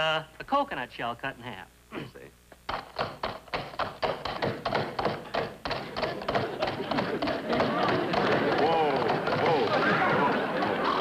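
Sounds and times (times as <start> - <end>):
coconut shells clopping on wood: 2.7 - 11.0.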